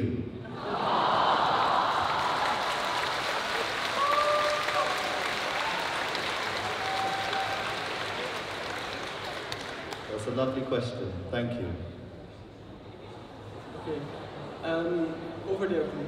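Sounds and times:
audience applauding and cheering: 0:00.7 - 0:10.3.

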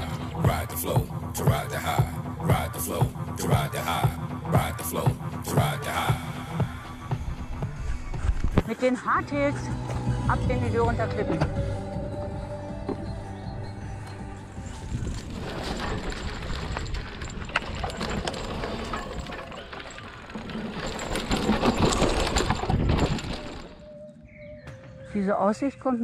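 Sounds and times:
music: 0:00.0 - 0:15.4, 0:23.7 - 0:26.0
bike tyres rushing on dirt: 0:14.5 - 0:23.8
bike rattles and knocks: 0:14.6 - 0:24.0.

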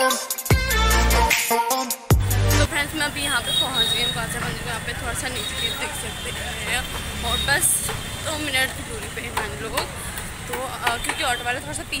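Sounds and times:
street traffic rumble: 0:02.2 - 0:12.0
woman talking: 0:02.7 - 0:12.0.

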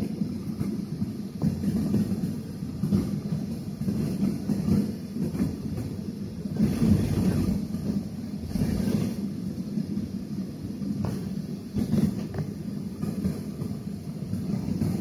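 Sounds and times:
jet engines rumbling: 0:00.0 - 0:15.0
wheels rolling over pavement: 0:00.0 - 0:15.0.

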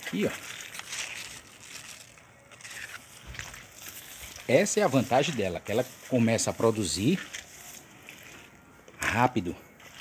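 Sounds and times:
faint background noise: 0:00.0 - 0:10.0
person speaking: 0:04.2 - 0:09.8.

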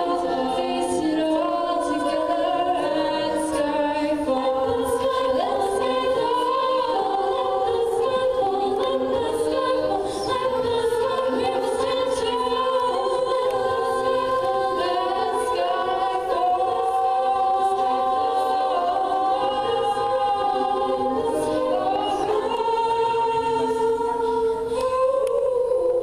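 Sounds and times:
female a cappella choir singing: 0:00.0 - 0:26.0.

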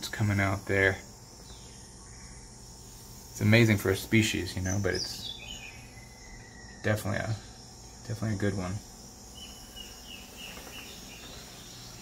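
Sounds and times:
faint insect chorus: 0:00.0 - 0:12.0.

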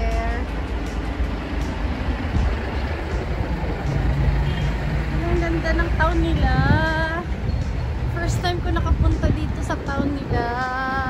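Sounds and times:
engine hum: 0:00.0 - 0:11.0
road traffic rumble: 0:00.0 - 0:11.0.

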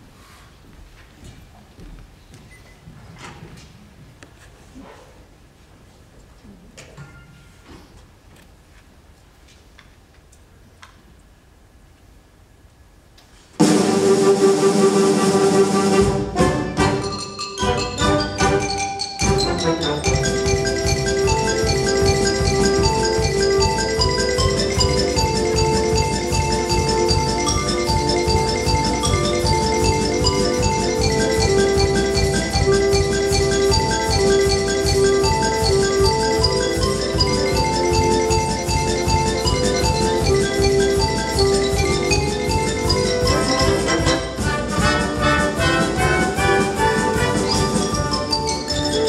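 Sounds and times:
wind band accompaniment: 0:13.6 - 0:49.0
xylophone struck notes: 0:16.4 - 0:49.0.

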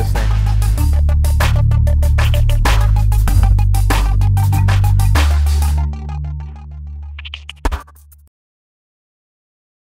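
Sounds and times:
electronic music with deep bass: 0:00.0 - 0:08.3.

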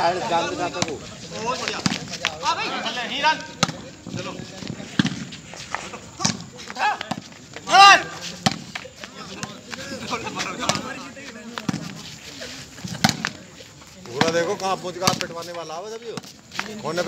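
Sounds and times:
players shouting: 0:05.8 - 0:11.5.

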